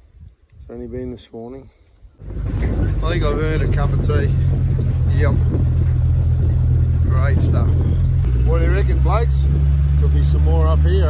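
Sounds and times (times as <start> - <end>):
vehicle engine and road rumble: 2.2 - 11.0.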